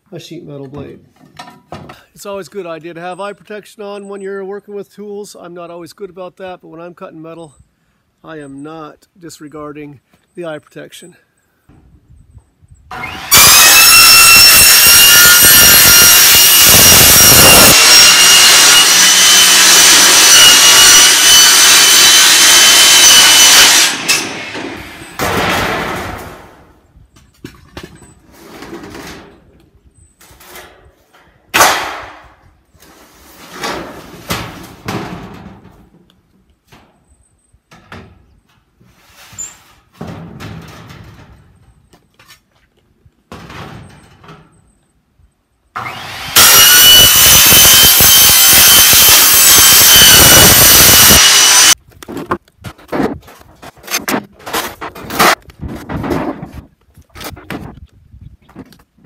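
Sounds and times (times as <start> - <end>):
circular saw cutting metal: 12.9 - 25.2, 45.8 - 51.8
sharp bang: 16.3 - 26.6, 31.5 - 32.2
metal sheet knocks and rattles: 24.1 - 26.6, 33.6 - 35.9, 39.9 - 41.6, 43.3 - 44.5, 52.7 - 56.7.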